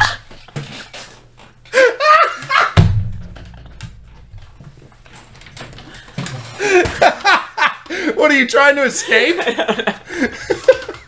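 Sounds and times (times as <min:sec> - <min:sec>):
people laughing hard: 0:01.7 - 0:02.8, 0:06.6 - 0:08.1, 0:09.0 - 0:11.0
heavy thump: 0:02.8 - 0:04.6.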